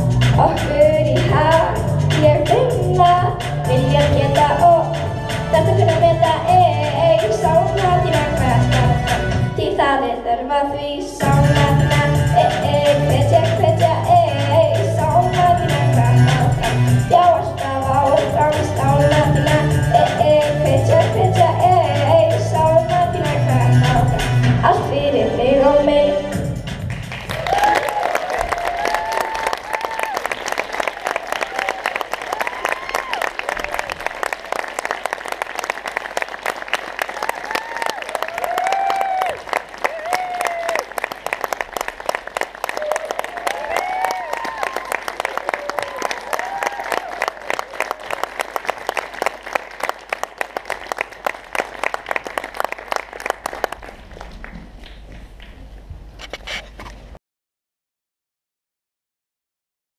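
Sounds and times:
audience applauding: 26.9s - 55.5s
shrill whoops and cheers: 27.3s - 33.9s, 37.1s - 41.0s, 42.7s - 48.1s.

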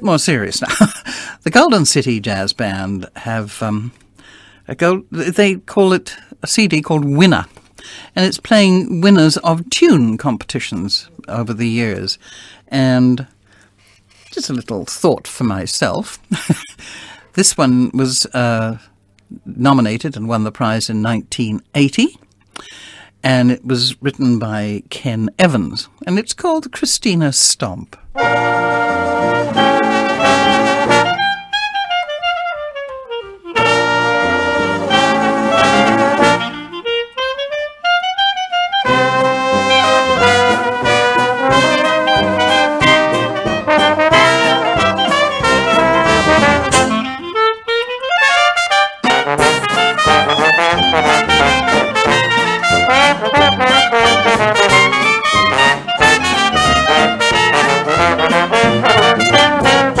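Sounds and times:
jazz band with trumpet and trombone: 28.1s - 60.0s
solo horn falling phrase: 28.2s - 60.0s.

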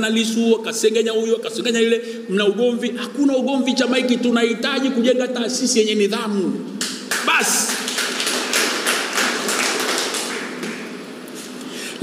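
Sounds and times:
audience applauding: 6.8s - 11.1s.

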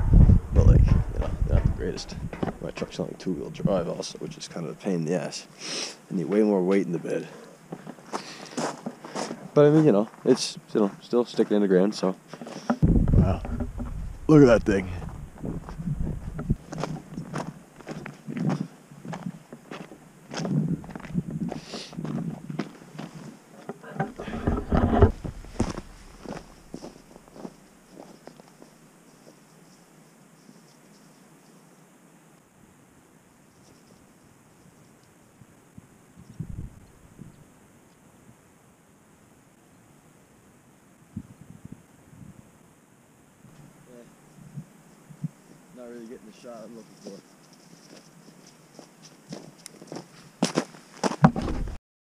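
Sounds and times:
footsteps on rough ground: 0.0s - 4.0s, 6.2s - 29.8s, 46.7s - 51.8s
faint thumps: 0.1s - 3.8s, 12.6s - 17.4s, 23.6s - 27.5s.

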